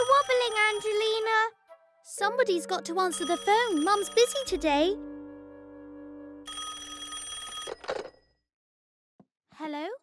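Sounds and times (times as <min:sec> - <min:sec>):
telephone bell ringing: 0:00.0 - 0:01.3, 0:03.0 - 0:04.7, 0:06.5 - 0:08.4.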